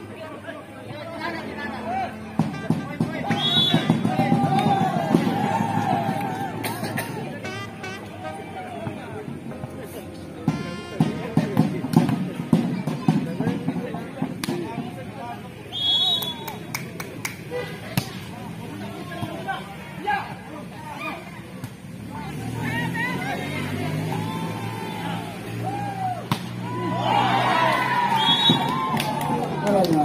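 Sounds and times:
crowd voices: 0:00.0 - 0:30.0
referee's whistle: 0:03.2 - 0:04.0, 0:15.7 - 0:16.6, 0:28.1 - 0:28.8.

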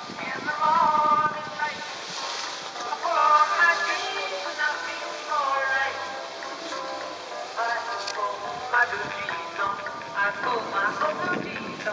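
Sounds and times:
background music with singing: 0:00.0 - 0:11.9.

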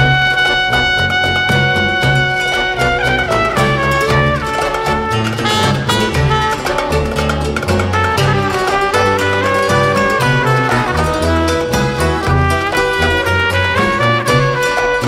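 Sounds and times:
klezmer band instrumental: 0:00.0 - 0:15.0
pulsing bass line: 0:00.0 - 0:15.0.

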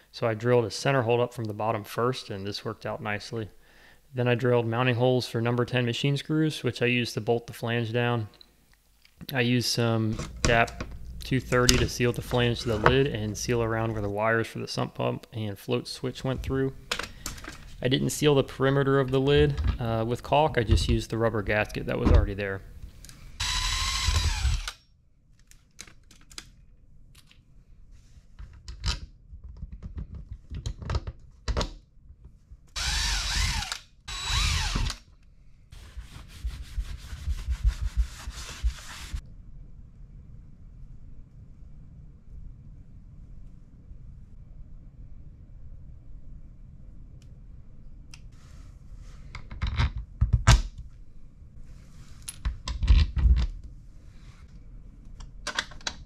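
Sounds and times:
tool handling noises: 0:10.1 - 0:14.2, 0:16.3 - 0:21.1
cordless drill driving screws: 0:23.4 - 0:24.8, 0:32.8 - 0:35.0.

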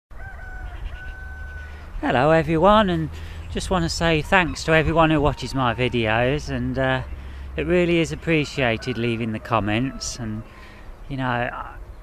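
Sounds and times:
distant rooster crowing: 0:00.1 - 0:02.0, 0:03.7 - 0:11.7.

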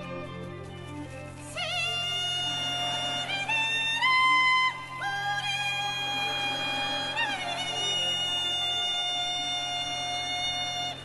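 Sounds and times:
low steady drone: 0:00.0 - 0:11.0
woman singing high note: 0:01.6 - 0:11.0.

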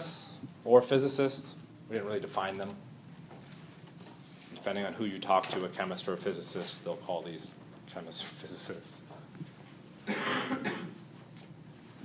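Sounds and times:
person coughing: 0:10.0 - 0:11.0.

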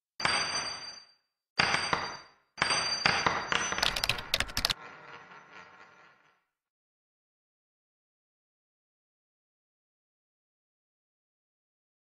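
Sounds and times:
sharp clicks: 0:03.8 - 0:04.8.

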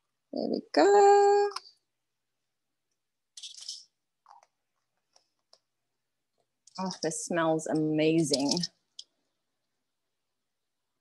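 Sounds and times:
plastic spoons clicking: 0:07.8 - 0:09.2.

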